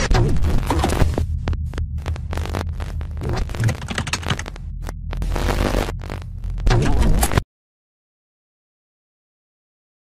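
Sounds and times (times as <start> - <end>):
deep steady hum: 0.0 - 7.4
digital static clicks and crackles: 0.0 - 7.4.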